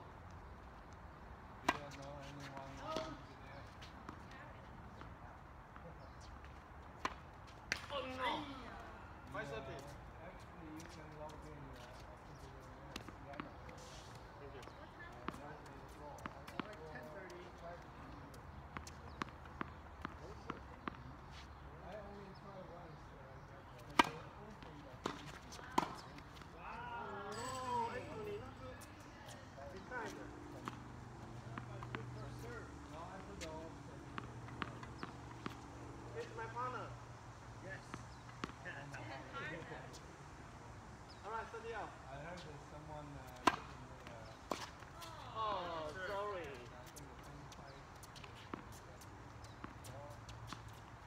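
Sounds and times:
racket hitting tennis ball: 23.9s - 24.3s, 24.9s - 26.4s, 43.3s - 45.0s.

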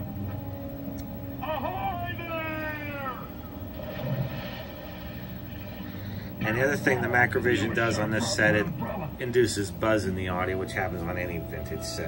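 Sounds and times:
cartoon soundtrack through tv speaker: 0.0s - 12.0s
steady low buzz: 0.0s - 12.0s
faint voices: 6.3s - 11.4s.

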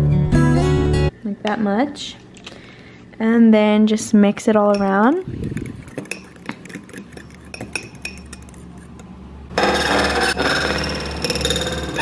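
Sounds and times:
fork whisking and scraping bowl: 4.7s - 10.6s
fork clicking against glass: 5.5s - 9.1s.

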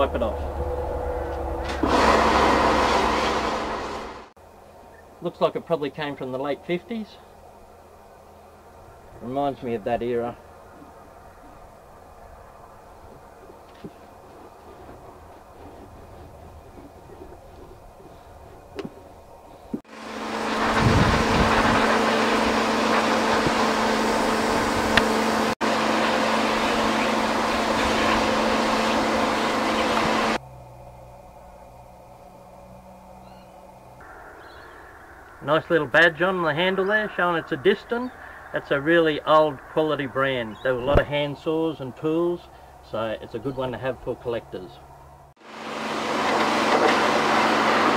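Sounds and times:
pump hum: 0.0s - 5.2s, 10.4s - 41.5s
pressure washer spraying water: 19.9s - 30.4s, 45.6s - 47.9s.

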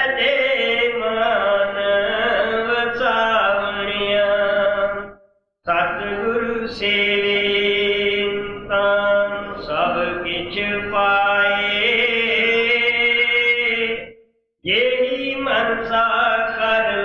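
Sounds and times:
man chanting: 0.0s - 5.1s, 5.7s - 17.0s.

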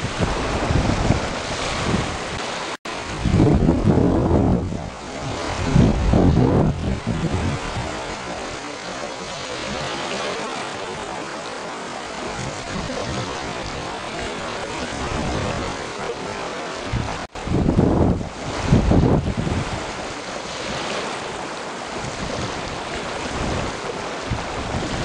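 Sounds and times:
wind rushing over microphone: 0.0s - 11.4s, 12.0s - 25.0s
heavy wind gusts buffeting microphone: 0.0s - 25.0s.

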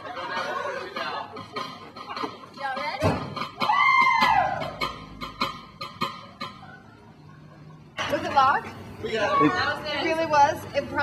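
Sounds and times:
steady ticking beat: 0.0s - 6.9s.

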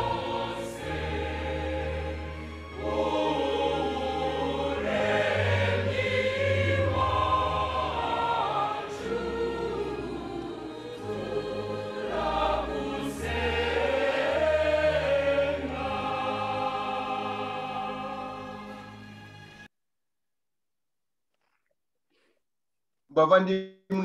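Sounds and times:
choir singing a hymn: 0.0s - 19.6s.

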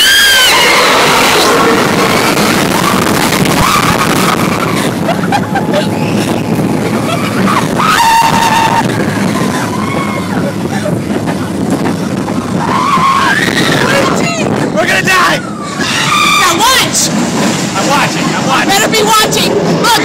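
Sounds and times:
riders screaming: 0.0s - 5.0s, 7.0s - 10.5s, 12.6s - 17.1s
roller coaster on track: 0.0s - 20.0s
wind rushing: 0.0s - 20.0s.

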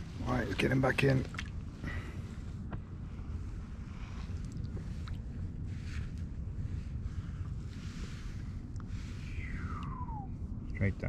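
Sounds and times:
wind rumble on microphone: 0.0s - 11.0s
soft water splash: 1.1s - 1.6s.

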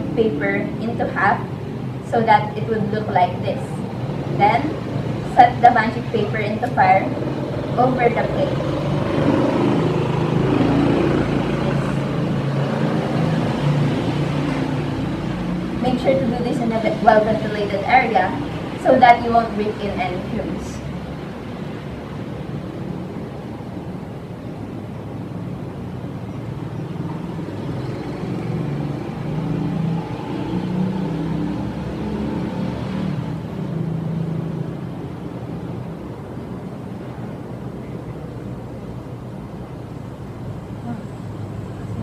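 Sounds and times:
low traffic rumble: 0.0s - 42.0s.

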